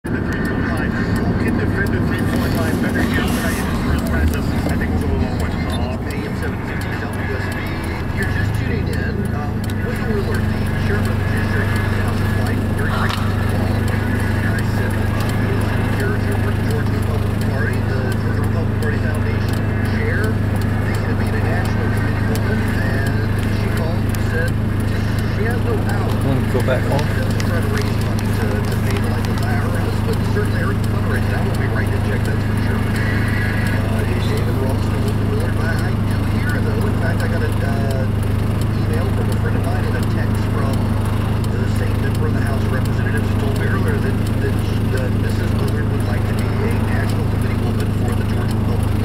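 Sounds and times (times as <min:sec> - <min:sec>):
muffled speech: 0:00.0 - 0:49.0
car interior hum: 0:00.1 - 0:49.0.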